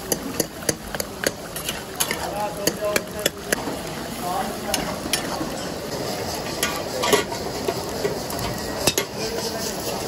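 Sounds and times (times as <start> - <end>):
gravy sizzling: 0.0 - 10.0
metal ladle scraping a wok: 4.8 - 10.0.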